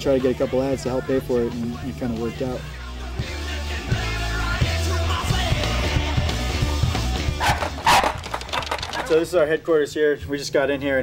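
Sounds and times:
punk rock music: 0:00.0 - 0:09.4
dog barking: 0:07.4 - 0:09.1.

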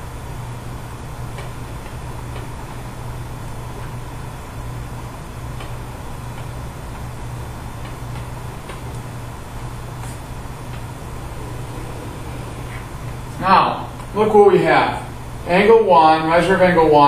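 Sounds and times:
low electrical hum and hiss: 0:00.0 - 0:17.0.

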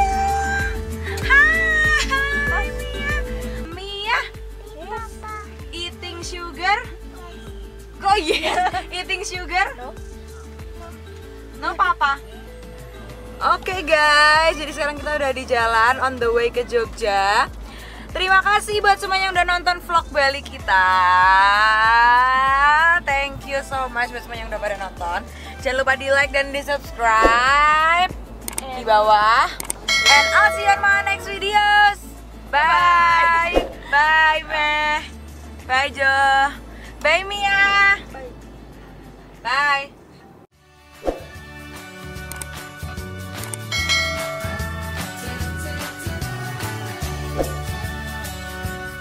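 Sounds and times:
background music: 0:00.0 - 0:49.0
bell-like chime: 0:29.9 - 0:31.4, 0:43.7 - 0:45.1
woman holding long high note: 0:30.0 - 0:31.4.

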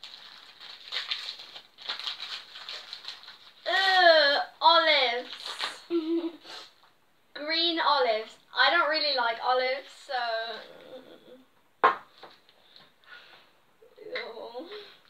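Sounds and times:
wrapping paper crinkling and tearing: 0:00.0 - 0:04.1, 0:05.0 - 0:06.0.

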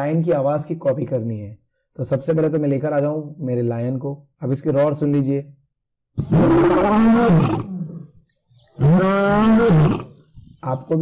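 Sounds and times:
lion roaring: 0:06.2 - 0:08.1, 0:08.8 - 0:10.3.

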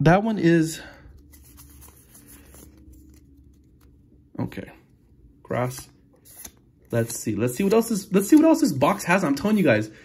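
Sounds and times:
low room hum: 0:00.0 - 0:10.0
cards sliding and flicking: 0:01.2 - 0:04.0, 0:05.7 - 0:08.7.

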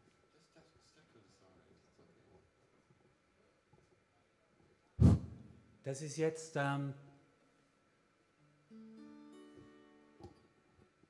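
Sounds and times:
acoustic guitar notes and chord: 0:08.7 - 0:10.2.

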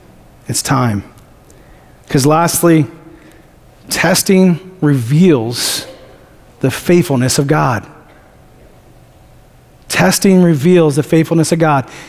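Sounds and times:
man speaking: 0:00.5 - 0:01.2, 0:02.1 - 0:03.2, 0:03.9 - 0:08.1, 0:09.9 - 0:11.9.

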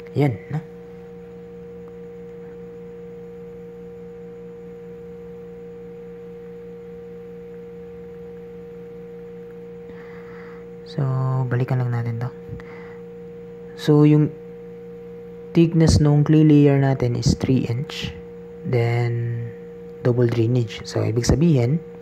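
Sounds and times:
steady tonal hum: 0:00.0 - 0:22.0.

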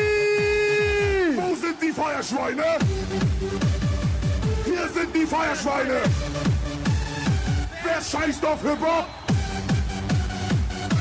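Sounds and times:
person shouting: 0:00.0 - 0:01.4
techno dance music: 0:00.0 - 0:11.0.

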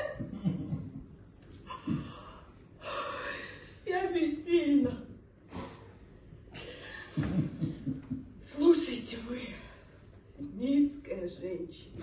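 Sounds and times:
woman speaking: 0:03.9 - 0:05.1, 0:08.4 - 0:09.8, 0:10.4 - 0:12.0.

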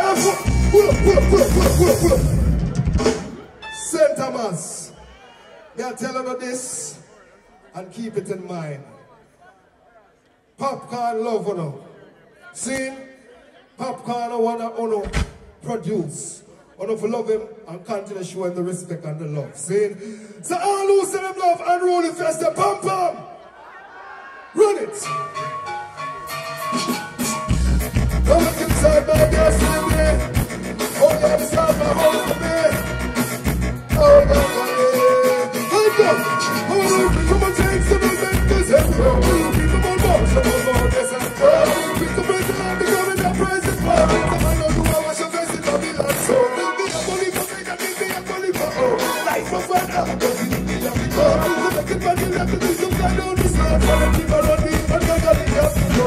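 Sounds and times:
man singing into microphone: 0:00.0 - 0:02.3, 0:28.3 - 0:30.4, 0:31.0 - 0:32.9, 0:34.0 - 0:56.0
live band with vocalist: 0:00.0 - 0:04.1, 0:25.0 - 0:56.0.

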